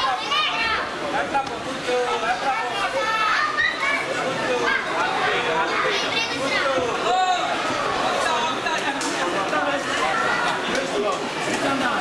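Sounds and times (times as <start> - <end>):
crowd shouting and talking: 0.0 - 12.0.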